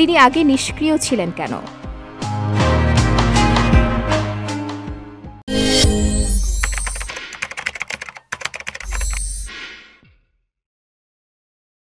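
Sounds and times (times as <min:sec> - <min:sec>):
rapid dense clicks: 0:06.6 - 0:09.5.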